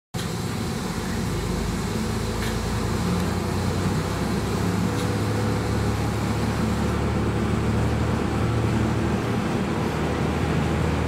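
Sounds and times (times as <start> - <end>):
diesel railcar engine idling: 0.2 - 11.0.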